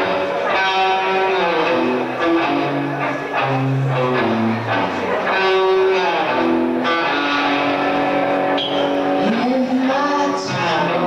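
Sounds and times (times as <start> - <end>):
electric guitar sustained notes: 0.0 - 11.0
live rock band music: 0.0 - 11.0.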